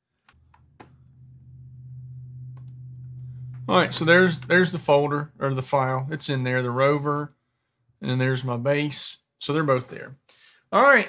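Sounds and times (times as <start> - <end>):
low steady hum: 0.3 - 8.3.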